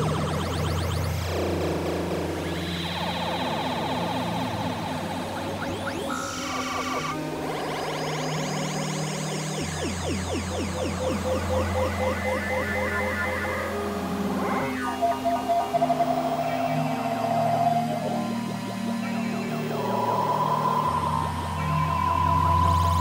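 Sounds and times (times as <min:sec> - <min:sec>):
low bass drone: 0:00.0 - 0:07.2
synthesizer pitch sweeps: 0:00.0 - 0:23.0
held high synth tones: 0:02.5 - 0:23.0.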